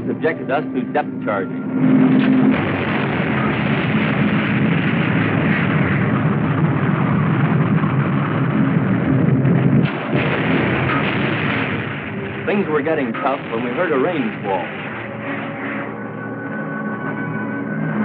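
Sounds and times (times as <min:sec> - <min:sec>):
depth charges exploding underwater: 0:01.8 - 0:15.9.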